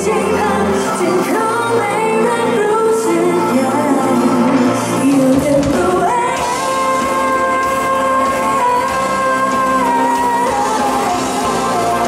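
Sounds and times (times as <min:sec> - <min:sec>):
live pop band: 0:00.0 - 0:12.0.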